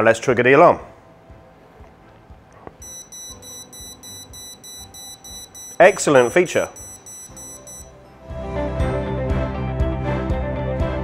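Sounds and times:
alarm beeping rapidly: 2.8 - 7.9.

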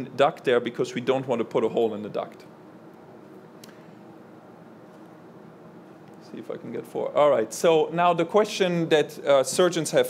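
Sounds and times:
faint hiss and hum: 0.0 - 10.0.

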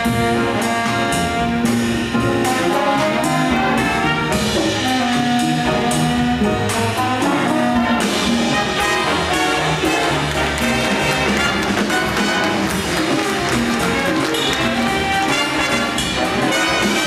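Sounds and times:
jazz big band playing: 0.0 - 17.0.

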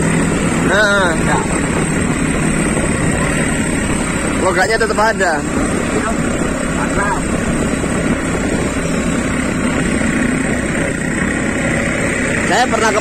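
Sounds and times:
motorcycle engine running: 0.0 - 13.0
road noise: 0.0 - 13.0.

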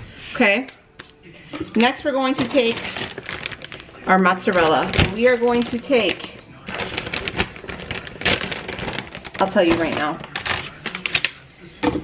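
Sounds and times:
plastic bag crinkling: 1.1 - 11.7.

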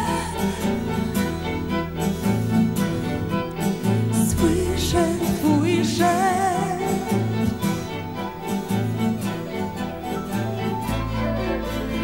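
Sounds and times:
acoustic guitar picking: 0.0 - 12.0
violins and cello: 0.0 - 12.0.

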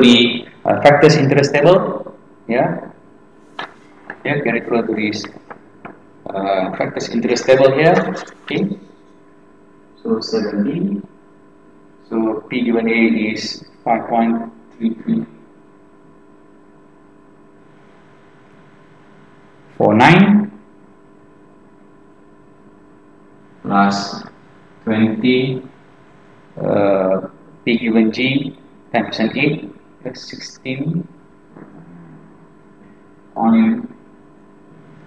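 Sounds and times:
faint room hum: 0.0 - 35.0
thin electrical tones: 0.0 - 35.0.

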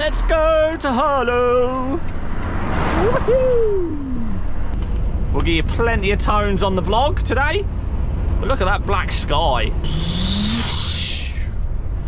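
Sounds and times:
lorry engine and road rumble: 0.0 - 12.0
tone gliding down: 9.8 - 11.6
whoosh: 9.8 - 12.0.

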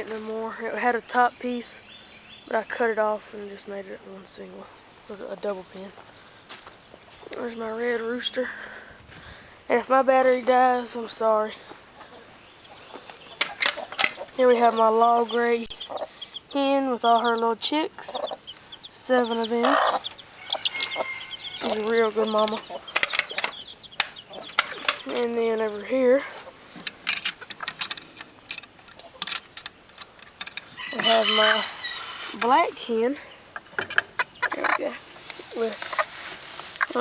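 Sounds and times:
sharp clicks and crackles: 22.4 - 25.2.

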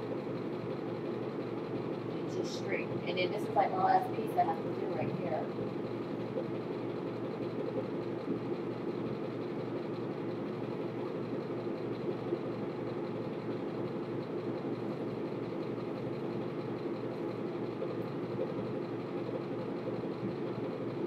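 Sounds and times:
low mechanical hum: 0.0 - 21.0.

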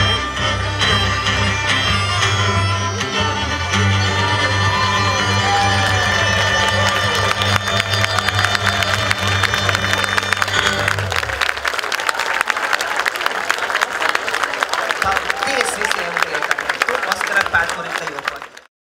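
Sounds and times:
live folk dance music: 0.0 - 18.6
crowd applauding and cheering: 0.0 - 18.7.

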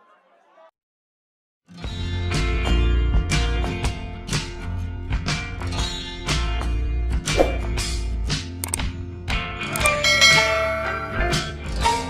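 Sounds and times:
background music: 1.7 - 12.0.

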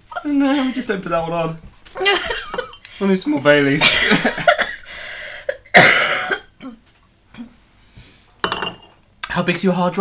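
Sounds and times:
laughter: 2.0 - 2.8, 3.8 - 4.9
harsh cough: 5.7 - 6.8.

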